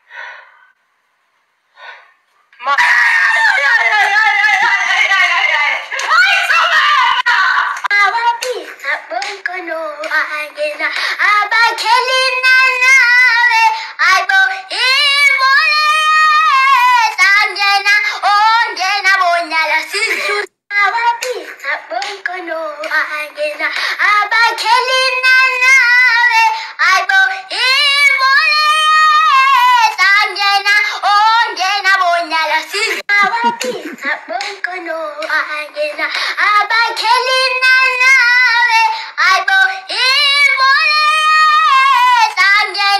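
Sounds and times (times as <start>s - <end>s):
high-pitched singing voice: 7.0s - 42.9s.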